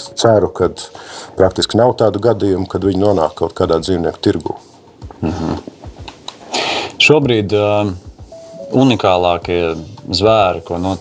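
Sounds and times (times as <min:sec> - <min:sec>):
man speaking: 0:00.0 - 0:05.6, 0:07.0 - 0:11.0
breathy noise: 0:04.7 - 0:07.0.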